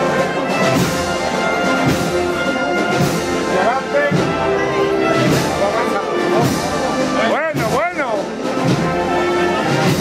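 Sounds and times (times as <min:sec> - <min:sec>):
brass band playing a march: 0:00.0 - 0:10.0.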